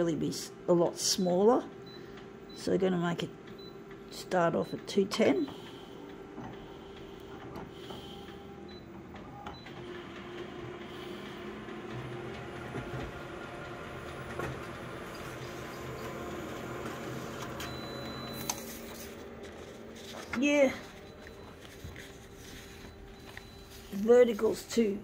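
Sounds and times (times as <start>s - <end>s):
copier whirring: 0.4s - 25.0s
deep drive hum: 1.6s - 25.0s.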